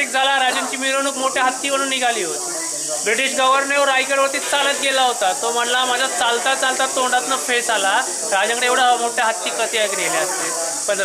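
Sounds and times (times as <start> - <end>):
high-pitched hiss: 0.0 - 11.0.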